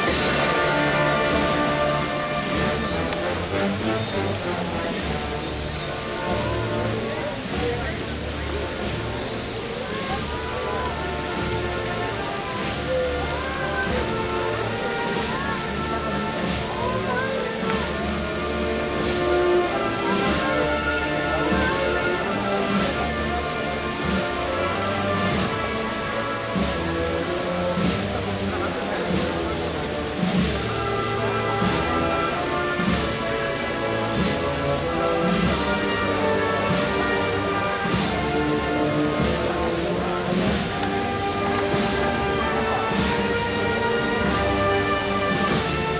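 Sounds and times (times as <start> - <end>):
band playing slow processional march: 0.0 - 45.9
steady rushing noise: 0.0 - 45.9.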